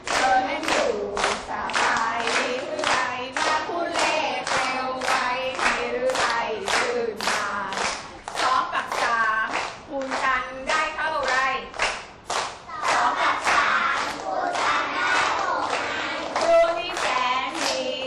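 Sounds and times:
children and teacher singing: 0.0s - 18.0s.

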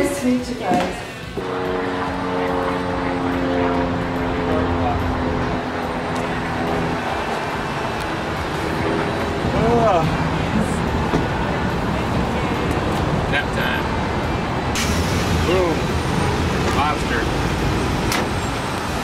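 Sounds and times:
city street traffic: 0.0s - 19.0s
vehicle engine humming: 0.0s - 19.0s.

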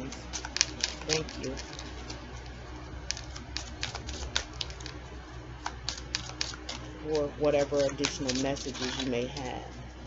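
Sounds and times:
cards being shuffled: 0.0s - 5.0s, 5.6s - 9.8s.

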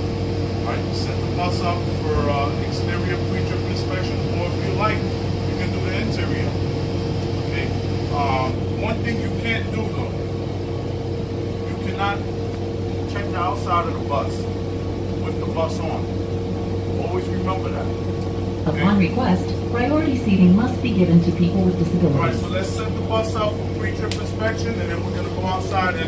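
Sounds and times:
bus engine idling: 0.0s - 26.0s.

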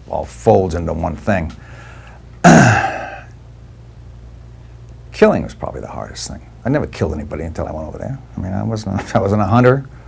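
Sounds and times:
man clearing his throat: 2.4s - 3.3s.

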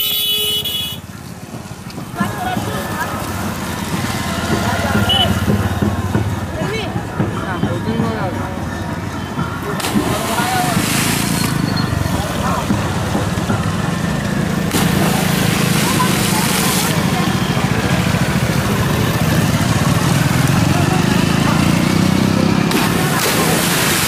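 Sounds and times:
motorcycle engines passing: 0.0s - 24.0s
onlookers' voices: 0.0s - 24.0s
wide rushing noise: 9.6s - 21.0s.

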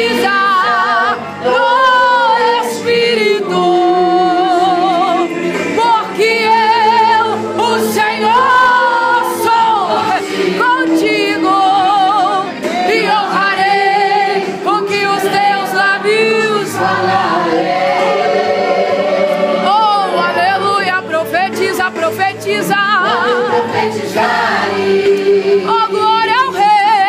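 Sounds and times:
group singing gospel song: 0.0s - 27.0s.

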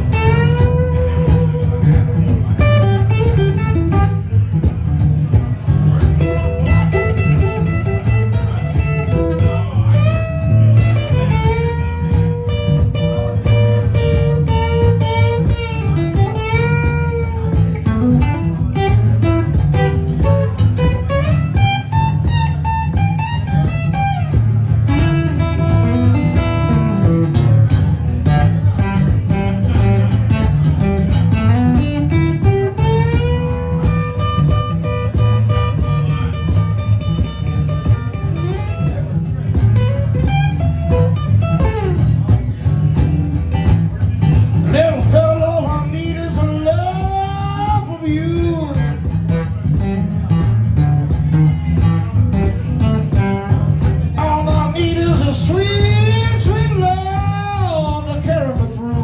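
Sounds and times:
acoustic guitar blues lead: 0.0s - 59.0s.

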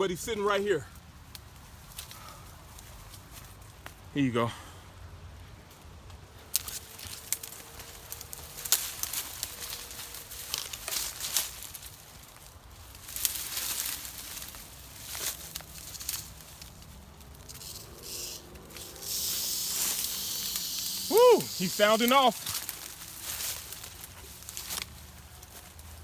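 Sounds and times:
brush and twigs rustling and snapping: 0.9s - 4.2s, 5.4s - 26.0s
rattlesnake rattling: 6.5s - 24.9s.

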